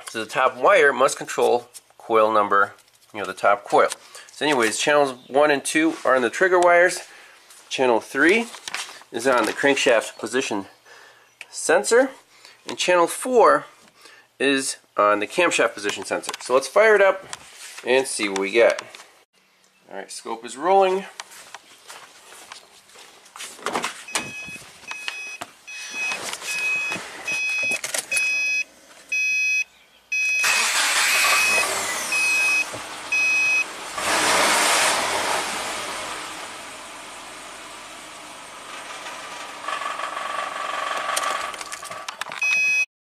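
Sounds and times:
dashboard warning chime: 24.1 - 30.6, 31.2 - 33.6, 42.4 - 42.9
car engine starting and idling: 30.4 - 41.9.

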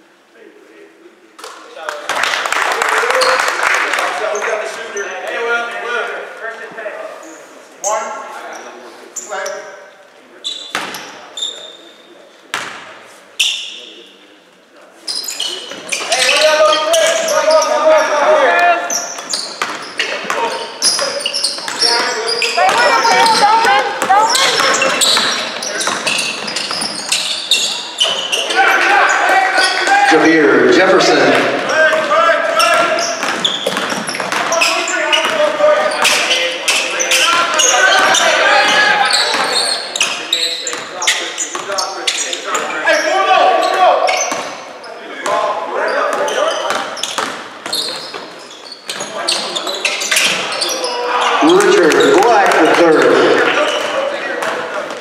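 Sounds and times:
loud voices: 15.2 - 33.2, 34.0 - 41.4, 49.0 - 55.0.

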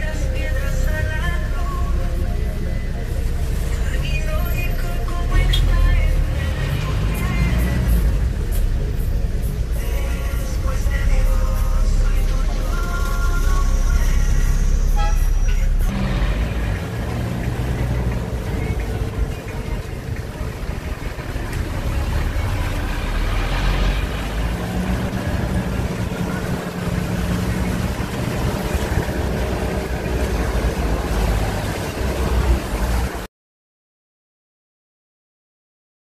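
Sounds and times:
low traffic rumble: 0.0 - 33.3
traffic engines passing: 0.0 - 33.3.

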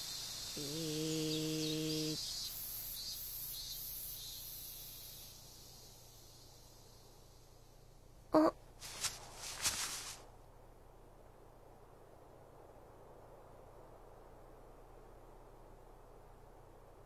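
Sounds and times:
birds chirping: 0.0 - 3.8
insects: 0.0 - 17.0
cartoon creature low hum: 0.6 - 2.2, 8.3 - 8.6.

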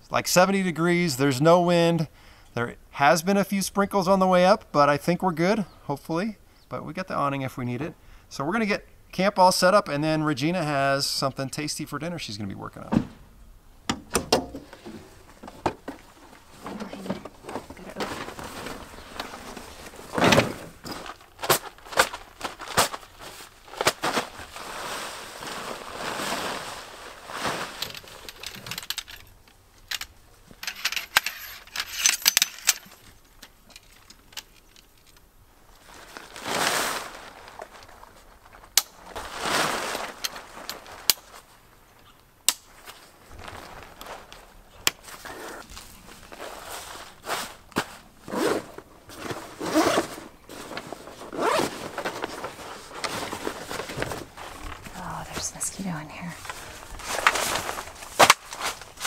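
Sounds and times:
nylon tent fabric rustling: 14.6 - 28.5, 35.6 - 41.8, 42.7 - 59.0
zipper opening on bag: 48.3 - 50.3, 51.2 - 51.9.

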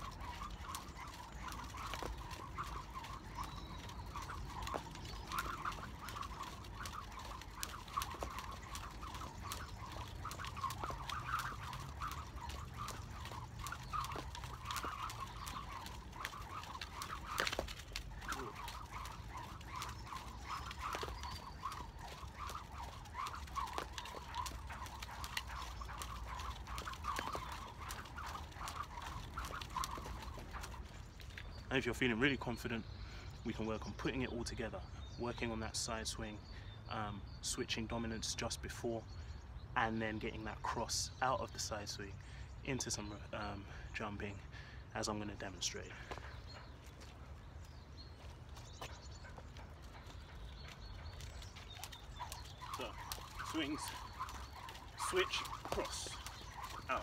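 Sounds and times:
jump rope clicks: 0.0 - 31.6, 48.2 - 57.0
jump rope whirring: 0.0 - 32.7, 46.0 - 57.0.

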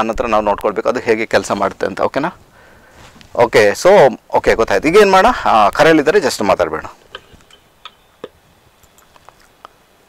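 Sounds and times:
man speaking: 0.0 - 2.4, 3.3 - 7.0.

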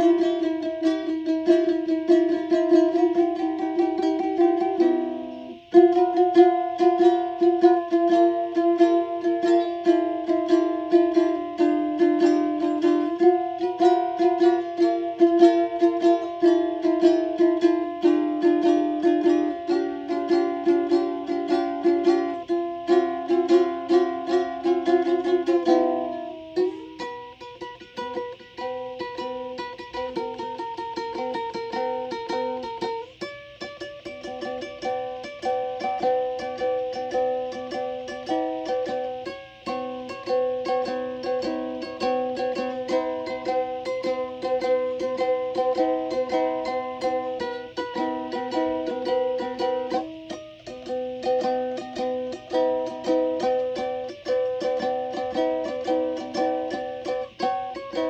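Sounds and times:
plucked string instrument music: 0.0 - 58.0.

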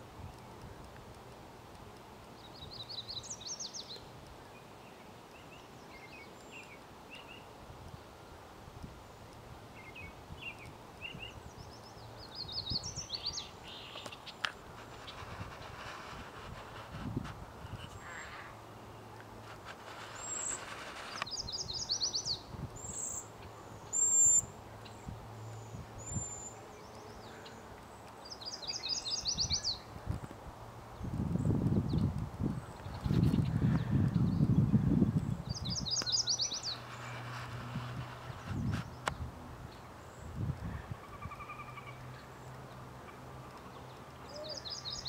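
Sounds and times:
songbirds singing: 1.8 - 8.4, 9.0 - 17.0, 17.7 - 45.0
wind buffeting microphone: 14.7 - 18.0, 29.4 - 41.3.

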